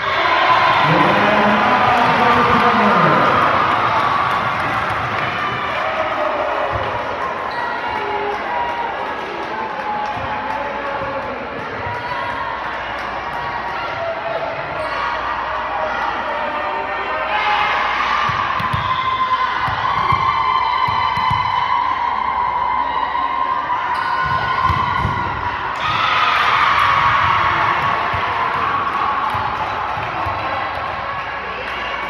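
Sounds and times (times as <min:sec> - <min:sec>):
crowd cheering and shouting: 0:00.0 - 0:32.0.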